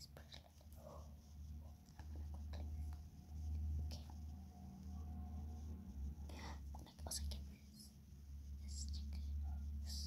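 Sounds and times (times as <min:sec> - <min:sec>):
girl whispering: 0:00.0 - 0:01.1, 0:03.8 - 0:04.1, 0:06.3 - 0:07.9, 0:08.6 - 0:10.0
low steady hum: 0:00.0 - 0:10.0.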